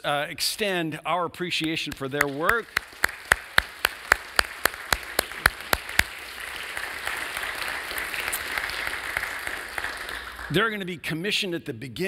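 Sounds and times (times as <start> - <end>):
close hands clapping loudly: 1.6 - 10.6
crowd applauding: 2.2 - 10.6.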